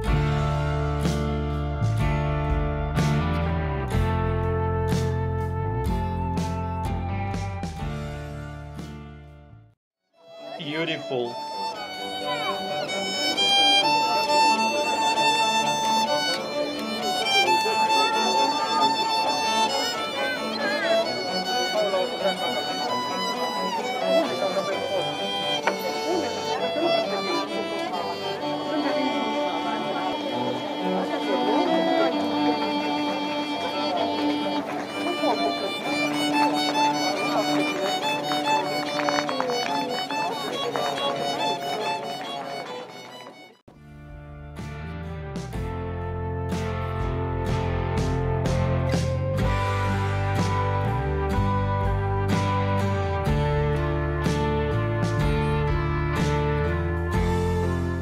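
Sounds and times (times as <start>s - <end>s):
violin playing long notes: 10.2s - 43.7s, 45.6s - 58.0s
cello playing: 10.3s - 58.0s.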